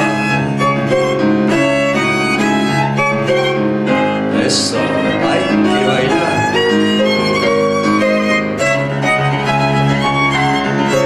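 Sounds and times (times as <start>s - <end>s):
piano: 0.0s - 11.0s
violin: 0.0s - 11.0s.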